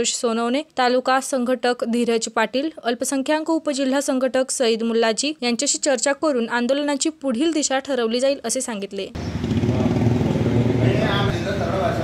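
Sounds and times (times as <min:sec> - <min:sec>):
man speaking: 0:10.8 - 0:12.0.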